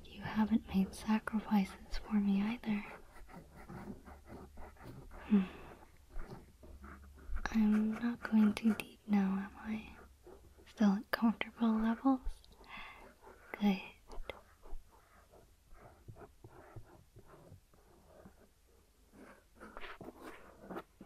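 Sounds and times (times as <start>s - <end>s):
woman whispering: 0.0s - 3.0s, 7.4s - 14.8s.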